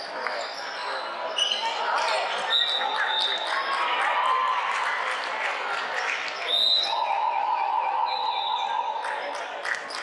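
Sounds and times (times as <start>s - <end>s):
long steady signal tone: 7.0s - 9.3s.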